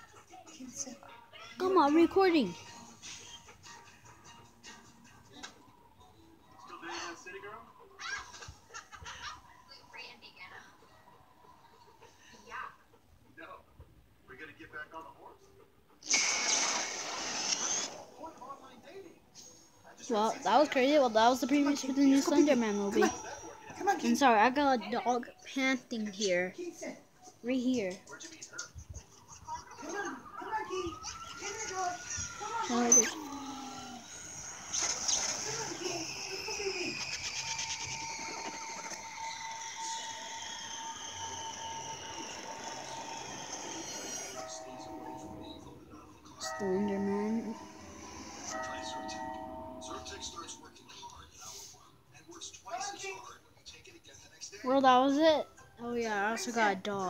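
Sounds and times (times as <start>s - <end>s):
high falling whines: 33.7s - 46.0s.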